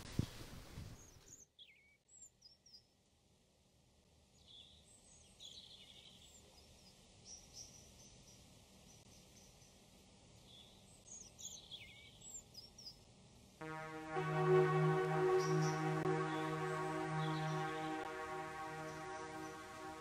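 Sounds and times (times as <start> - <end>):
low steady hum: 13.6 - 20.0.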